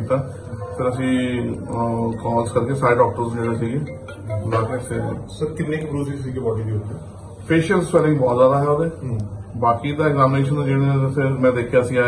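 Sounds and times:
man speaking: 0.0s - 12.0s.

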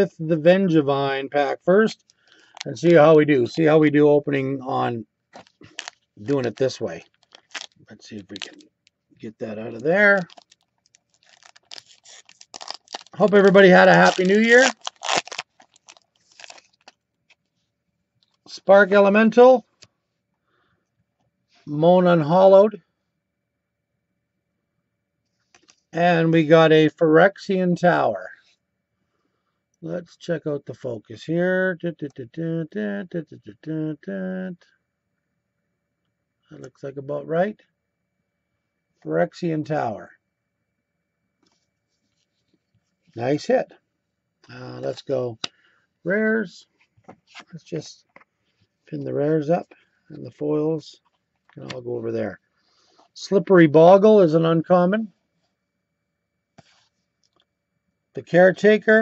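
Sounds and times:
foil wrapper crinkling: 5.4s - 8.7s, 9.5s - 17.4s.

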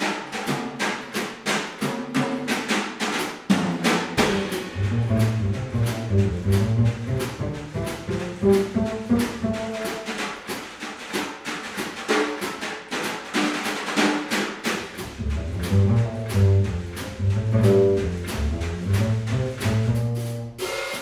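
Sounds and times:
drum kit cymbal strokes: 4.2s - 8.7s, 19.0s - 21.0s
low bass notes: 4.2s - 9.6s, 15.2s - 20.5s.

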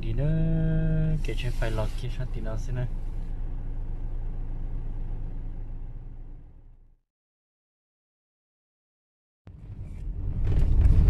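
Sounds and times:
vehicle rumble from inside cabin: 0.0s - 7.0s, 9.5s - 11.0s.

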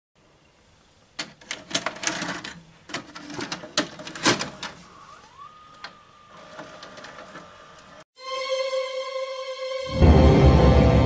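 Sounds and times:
tape motor whine: 4.6s - 8.0s.

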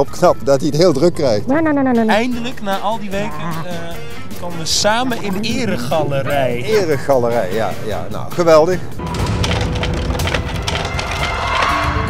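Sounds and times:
wood creaking and splintering: 9.0s - 12.0s.

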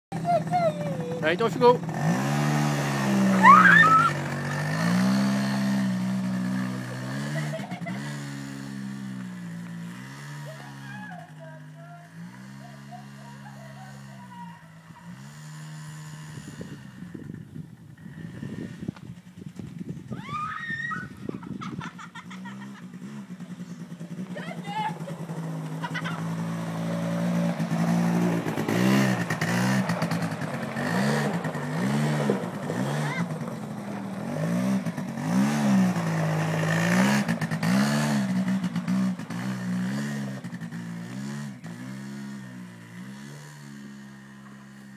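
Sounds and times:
quad bike engine pulling away: 0.1s - 44.9s
high rising squeal: 3.3s - 4.2s.

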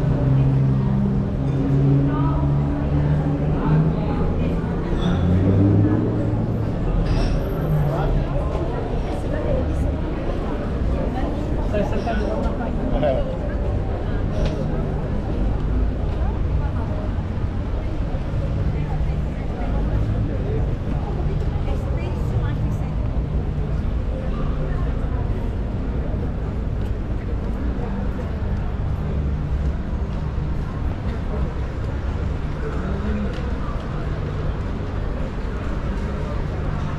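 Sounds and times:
chatter of passers-by: 0.0s - 36.9s
low traffic rumble: 0.0s - 36.9s.

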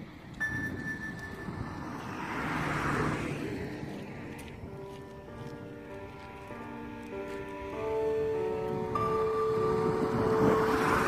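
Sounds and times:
vehicle rushing noise: 0.5s - 4.8s, 7.9s - 11.0s.

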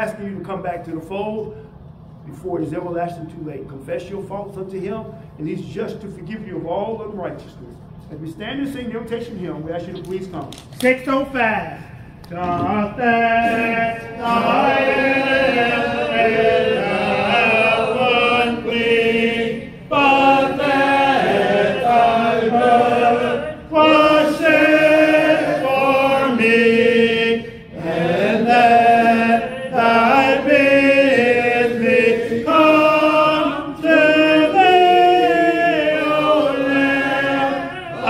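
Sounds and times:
congregation singing a hymn: 12.3s - 38.0s.

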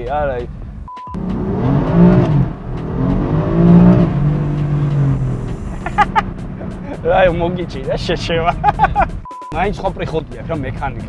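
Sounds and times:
car engine revving: 1.1s - 9.2s.

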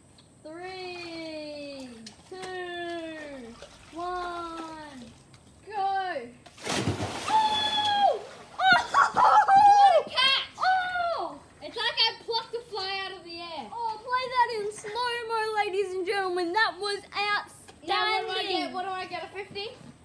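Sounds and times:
person splashing into pool: 6.5s - 9.8s
excited high-pitched shouting: 7.4s - 11.4s.

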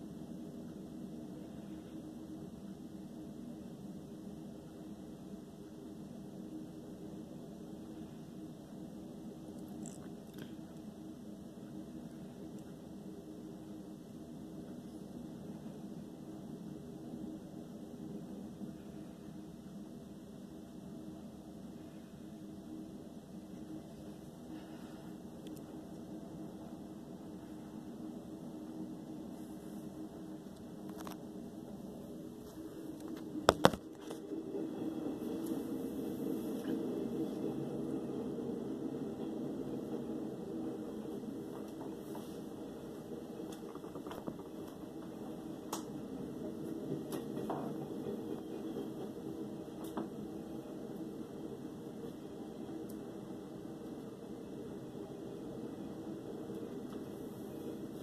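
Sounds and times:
electric fan humming: 0.0s - 58.0s
faint hum: 0.0s - 58.0s.

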